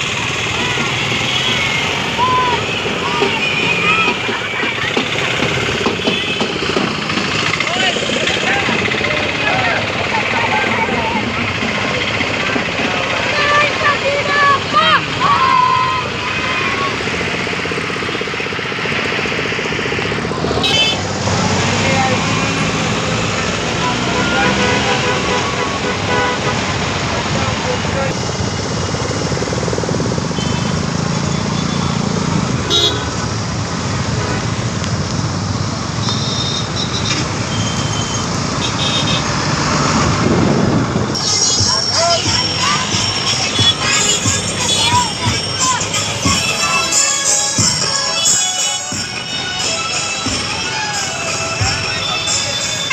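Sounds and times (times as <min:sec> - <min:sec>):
people's voices: 0:00.0 - 0:28.4, 0:40.9 - 0:52.9
engine and road noise: 0:00.0 - 0:52.9
vehicle horns tooting: 0:00.7 - 0:06.8, 0:20.6 - 0:21.1, 0:23.6 - 0:26.9, 0:30.3 - 0:33.3, 0:36.0 - 0:39.4, 0:41.2 - 0:52.9.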